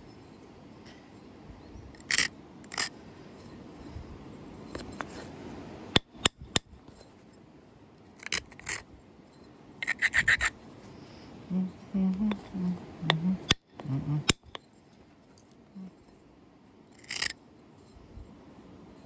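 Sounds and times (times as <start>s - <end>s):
abrader rubbing flint edge: 2.0s - 2.9s, 8.2s - 8.8s, 9.8s - 10.6s, 17.0s - 17.4s.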